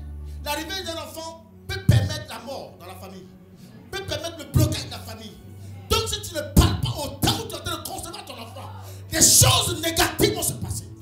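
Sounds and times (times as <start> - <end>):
background music low notes: 0.0 - 11.0
person speaking into microphone: 0.5 - 3.3, 3.9 - 10.9.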